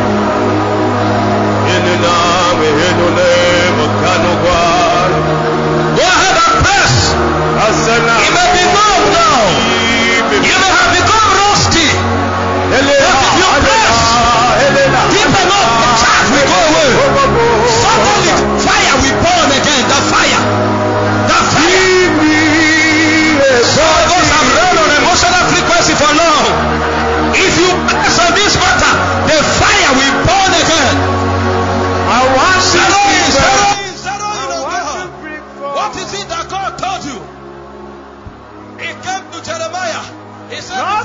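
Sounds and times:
music with sustained chords: 0:00.0 - 0:41.0
man's voice with sweeping pitch: 0:01.6 - 0:37.6, 0:38.8 - 0:41.0.

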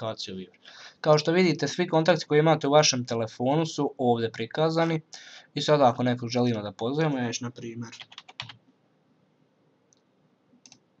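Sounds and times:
computer keyboard typing: 0:07.9 - 0:08.6.

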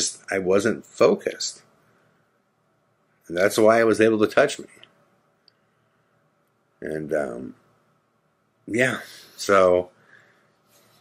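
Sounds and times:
man speaking: 0:00.0 - 0:01.7, 0:03.2 - 0:04.9, 0:06.8 - 0:07.7, 0:08.6 - 0:10.0
faint click: 0:04.8 - 0:05.6.

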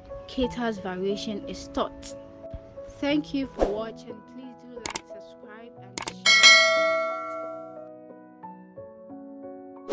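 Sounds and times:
background music: 0:00.0 - 0:09.9
mouse click: 0:04.8 - 0:05.0, 0:06.0 - 0:06.2
bell-like notification ding: 0:06.1 - 0:07.8.

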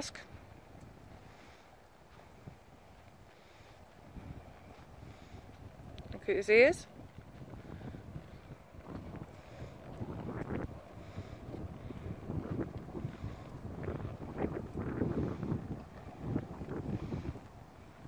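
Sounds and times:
hooves trotting on muddy ground: 0:00.0 - 0:18.0
wind buffeting microphone: 0:00.0 - 0:18.0.

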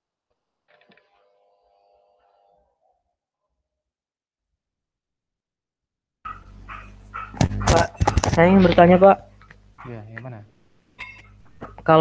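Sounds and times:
steady electrical hum: 0:06.3 - 0:12.0.

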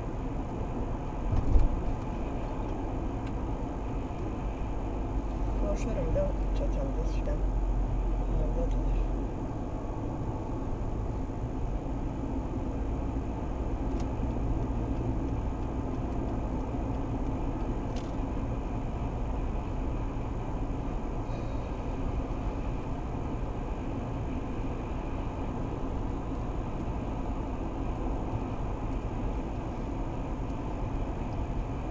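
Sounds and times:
car road and engine noise: 0:00.0 - 0:31.9.

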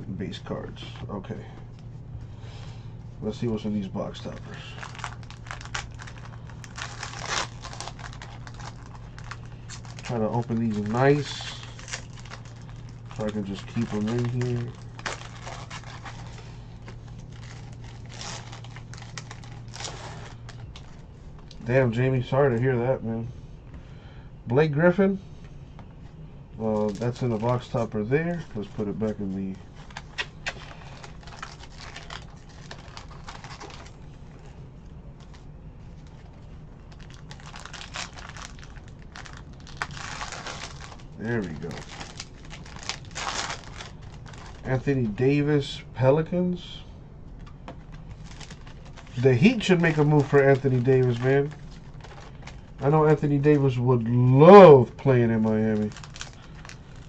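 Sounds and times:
low steady hum: 0:00.0 - 0:57.0
plastic wrapper crinkling: 0:03.5 - 0:21.7, 0:26.6 - 0:45.2, 0:47.3 - 0:53.8, 0:54.4 - 0:57.0.

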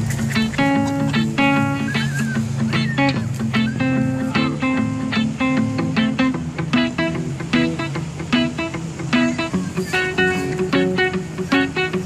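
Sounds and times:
plucked guitar music: 0:00.0 - 0:12.0.

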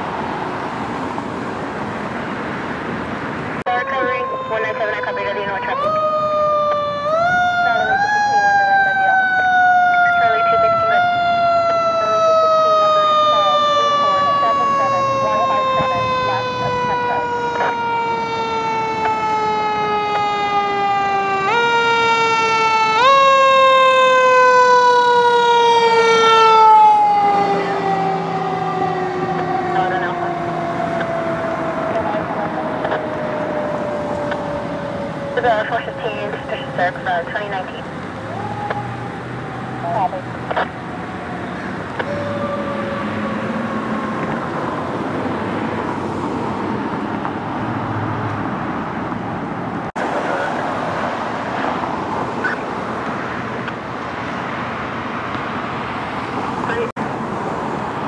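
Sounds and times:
fire engine siren wailing: 0:00.0 - 0:58.0
truck engine rumble: 0:00.0 - 0:58.0.

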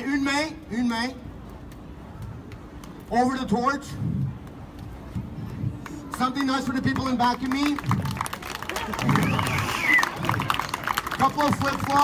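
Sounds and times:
people clapping: 0:05.4 - 0:12.0
crowd voices: 0:07.8 - 0:12.0.

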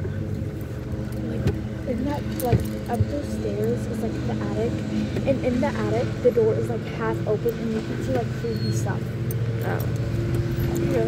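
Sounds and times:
golf cart running: 0:00.0 - 0:11.0.

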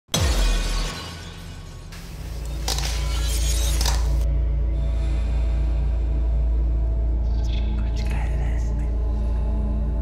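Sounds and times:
low pulsing drone: 0:04.2 - 0:10.0.

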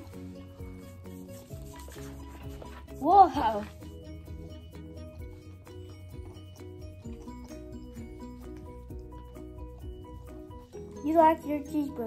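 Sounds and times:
background music with bass line: 0:00.0 - 0:11.0.

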